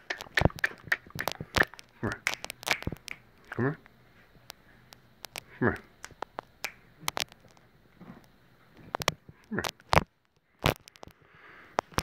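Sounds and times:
sharp snapping clicks: 0:00.0 - 0:07.6.

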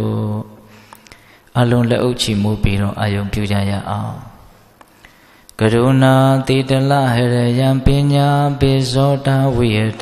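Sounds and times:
man chanting verses: 0:00.0 - 0:00.7, 0:01.5 - 0:04.5, 0:05.6 - 0:10.0.

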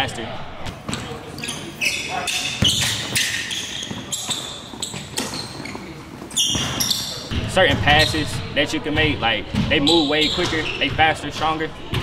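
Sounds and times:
sneaker squeaks: 0:00.6 - 0:12.0.

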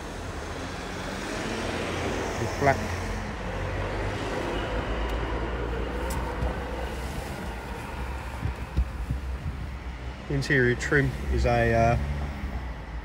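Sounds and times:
road traffic: 0:00.0 - 0:13.0
wind on microphone: 0:06.2 - 0:10.0.

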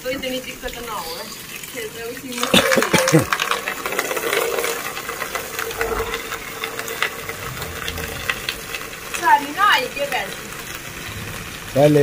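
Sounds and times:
steady tone: 0:05.7 - 0:09.2.

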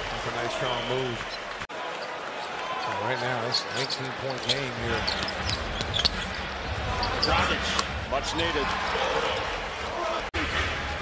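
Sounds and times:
arena crowd rumble: 0:00.0 - 0:11.0.

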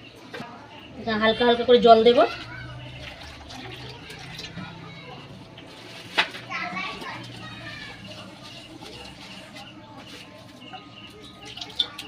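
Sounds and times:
children calling and playing: 0:00.0 - 0:12.0.

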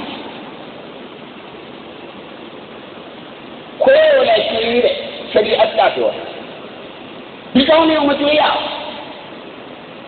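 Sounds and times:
background recording hiss: 0:00.0 - 0:10.0
man speaking: 0:03.8 - 0:06.4.

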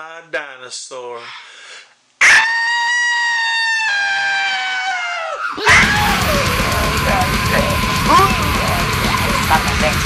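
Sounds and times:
high-pitched scream: 0:02.2 - 0:09.5.

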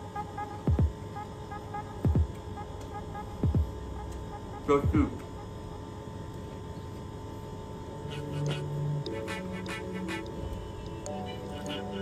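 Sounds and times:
steady electronic hum: 0:00.0 - 0:12.0
heartbeat-like double thump: 0:03.4 - 0:03.7.

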